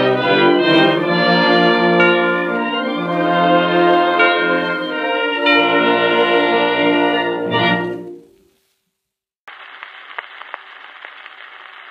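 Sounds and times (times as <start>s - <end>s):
record surface hiss: 7.1s - 11.9s
record clicks and crackles: 9.5s - 11.9s.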